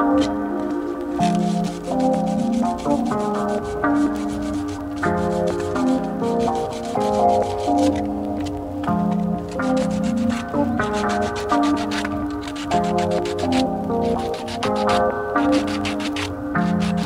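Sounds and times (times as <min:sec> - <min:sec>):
background music: 0:00.0 - 0:17.0
sandpaper rubbing plastic pipe: 0:00.0 - 0:17.0.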